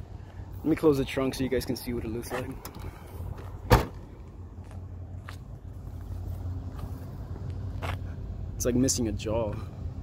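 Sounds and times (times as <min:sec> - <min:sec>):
car trunk lid slamming: 0:03.6 - 0:04.0.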